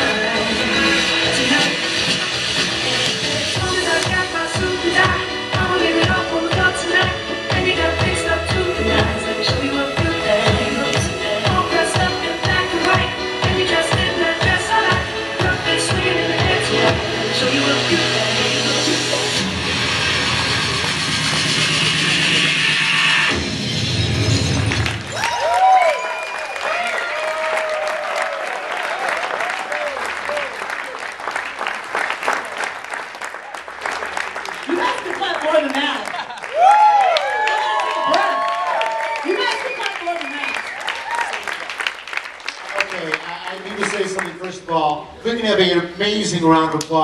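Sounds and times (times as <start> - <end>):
dance music with steady beat: 0.0 - 23.4
audience applause and cheering: 18.6 - 23.4, 24.3 - 44.8.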